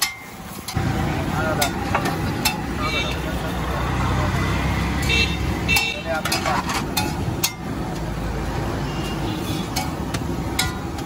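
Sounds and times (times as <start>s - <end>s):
street traffic hum: 0.0s - 11.0s
metal spatula scraping on griddle: 5.8s - 7.7s, 8.9s - 11.0s.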